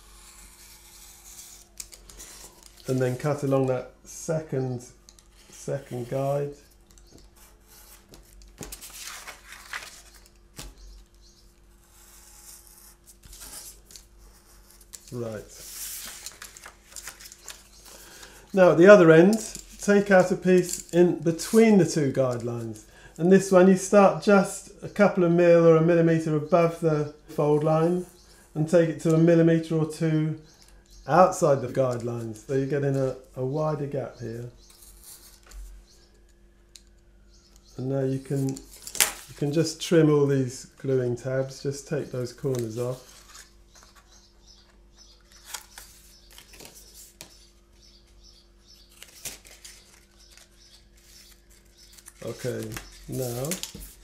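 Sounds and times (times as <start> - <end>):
craft knife scraping card: 0.0 - 3.1
paper rustling: 7.0 - 11.1, 11.8 - 18.5, 42.2 - 47.3, 48.9 - 54.0.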